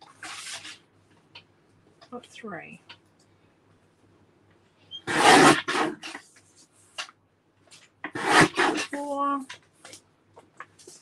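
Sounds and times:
soft paper rustle: 0.0s - 2.0s, 5.9s - 11.0s
cardstock swishing through paper trimmer: 5.1s - 6.2s, 8.1s - 9.0s.

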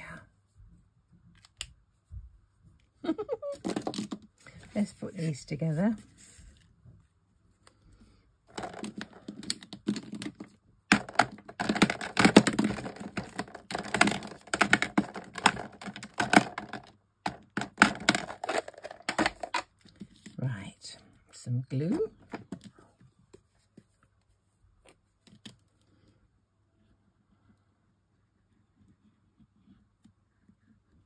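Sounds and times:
plastic pens clattering: 3.5s - 4.3s, 8.5s - 20.4s.

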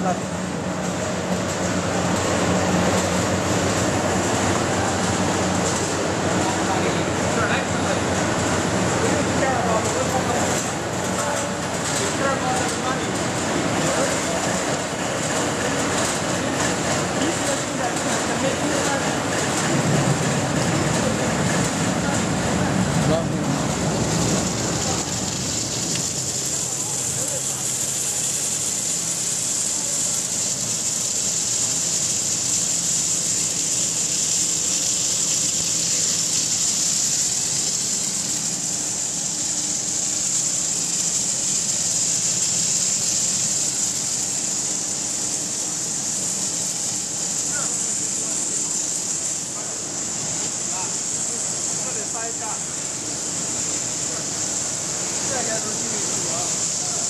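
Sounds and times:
machine hum: 0.0s - 50.2s
high-pitched machine whine: 0.0s - 57.0s.

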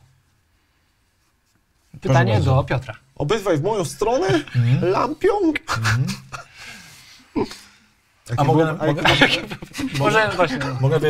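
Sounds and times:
voice: 2.0s - 6.3s, 8.3s - 11.0s.

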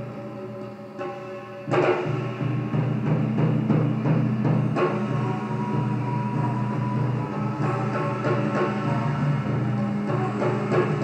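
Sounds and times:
sharp drum strikes: 1.6s - 11.0s
taiko drum ensemble: 1.7s - 11.0s.

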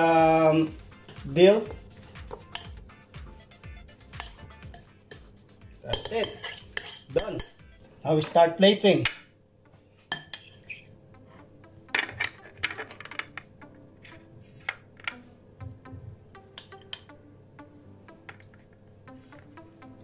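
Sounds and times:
faint background music: 0.0s - 20.0s
metal spoon clinking and scraping: 1.7s - 2.8s, 4.1s - 5.3s, 5.9s - 7.6s, 10.1s - 10.8s, 12.0s - 13.4s, 16.6s - 17.1s.

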